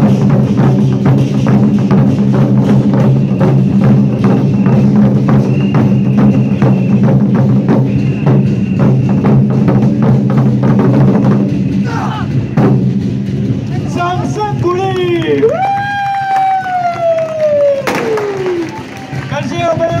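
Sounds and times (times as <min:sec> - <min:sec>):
large barrel drums beaten hard: 0:00.0 - 0:15.4.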